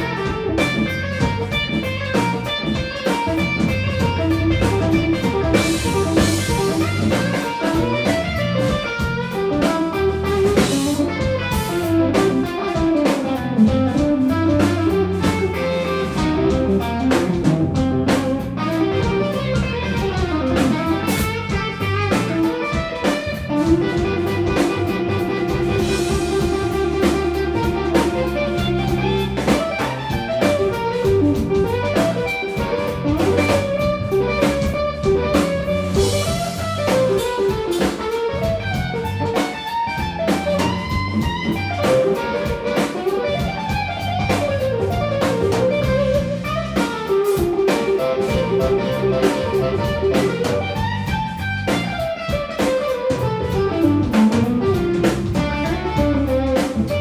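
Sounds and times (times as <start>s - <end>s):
bass guitar: 0.0s - 57.0s
drum kit: 0.0s - 57.0s
electric guitar solo: 0.0s - 57.0s.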